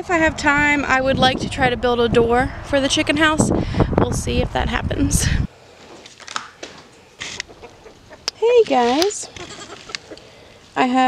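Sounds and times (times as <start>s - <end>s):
chickens clucking: 6.9s - 10.7s.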